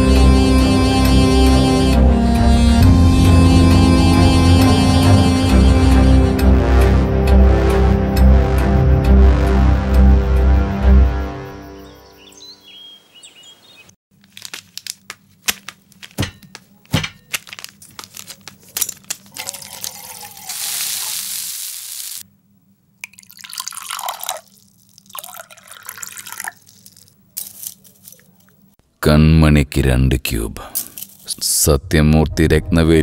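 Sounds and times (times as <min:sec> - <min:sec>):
utensils clinking: 0:15.6 - 0:20.7
milk pouring into saucepan: 0:19.4 - 0:21.0, 0:23.0 - 0:27.0.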